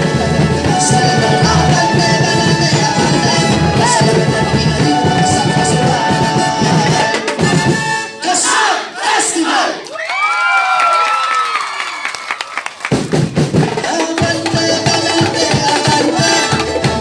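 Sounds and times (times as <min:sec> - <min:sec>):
drum and percussion music: 0:00.0 - 0:08.7, 0:12.5 - 0:17.0
group of voices shouting: 0:08.4 - 0:12.0
long falling cry: 0:09.9 - 0:12.6.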